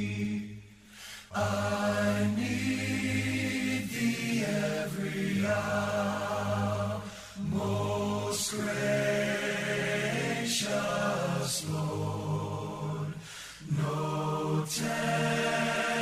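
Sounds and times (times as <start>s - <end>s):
choir singing unaccompanied: 0.0s - 0.7s, 1.3s - 16.0s.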